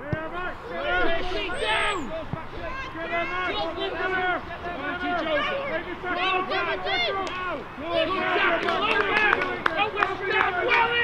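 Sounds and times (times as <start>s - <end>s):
children shouting and calling: 0.0s - 11.0s.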